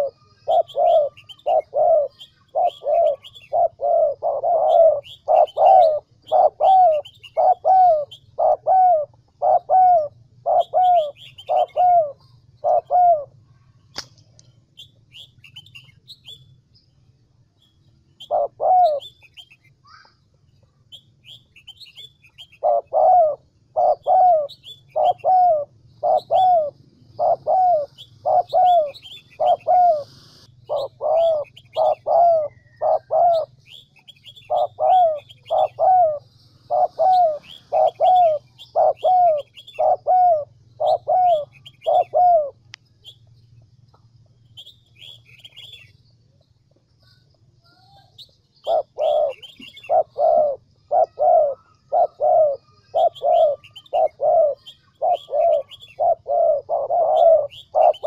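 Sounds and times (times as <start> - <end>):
dove cooing: 0.0 - 13.4, 18.2 - 19.2, 21.9 - 42.7, 48.6 - 58.0
small birds chirping: 0.0 - 58.0.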